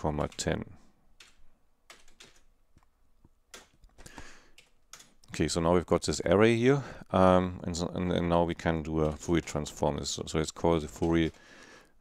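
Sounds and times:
faint keyboard keystrokes: 1.2 - 5.4, 10.6 - 11.6.

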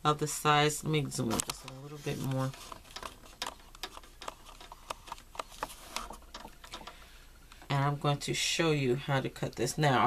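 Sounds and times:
handling clicks and taps: 1.3 - 7.7.

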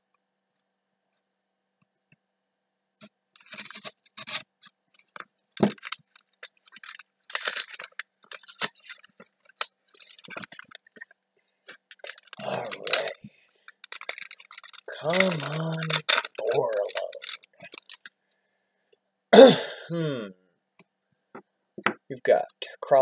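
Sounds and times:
cards rustling by hand: 3.4 - 18.2
wrapper crinkling: 3.4 - 18.2.

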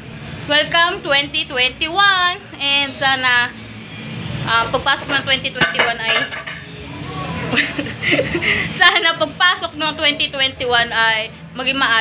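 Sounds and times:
woman talking: 0.5 - 3.6, 4.5 - 6.4, 8.7 - 12.0
dishes and cutlery clinking: 5.0 - 6.8.

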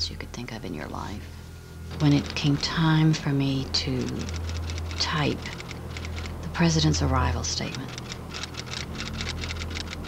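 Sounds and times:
steady low hum: 0.0 - 10.0
typewriter clacking: 2.0 - 2.9, 3.8 - 6.7, 7.4 - 10.0.

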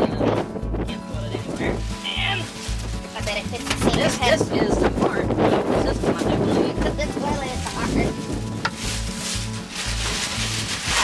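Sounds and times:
background music with bass line: 0.0 - 11.0
plastic bag crinkling: 1.8 - 4.4, 7.2 - 11.0.

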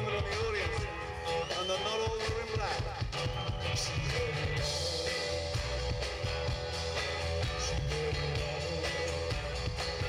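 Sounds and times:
drum kit: 0.0 - 10.0
guitars: 0.0 - 10.0
lead vocalist singing: 0.0 - 10.0.

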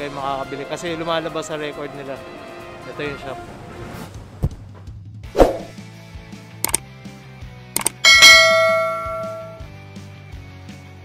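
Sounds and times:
quick clicks: 6.6 - 6.8, 7.8 - 8.0
bright bell ding: 7.8 - 9.7.

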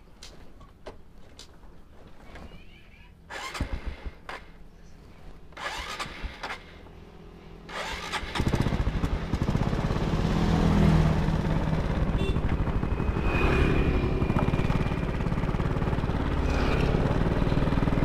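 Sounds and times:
motor scooter engine: 3.3 - 4.5, 5.5 - 6.8, 7.7 - 18.0.

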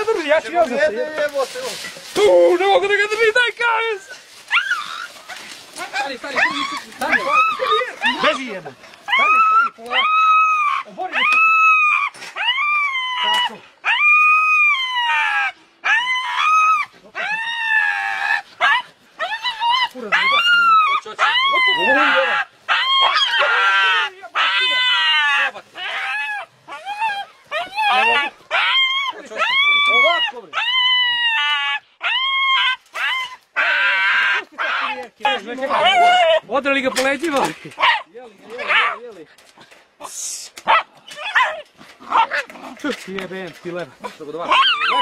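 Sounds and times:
dogs whining and yelping: 4.1 - 37.0, 40.7 - 42.8, 44.1 - 45.0.

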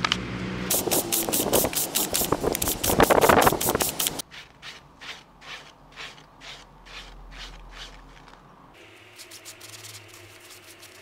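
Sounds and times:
sandpaper scraping metal sheet: 0.7 - 8.3, 9.0 - 11.0.

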